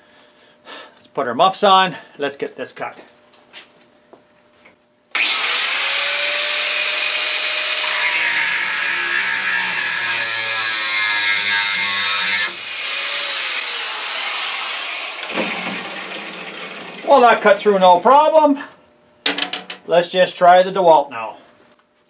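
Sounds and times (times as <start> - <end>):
angle grinder cutting steel: 5.2 - 17.7.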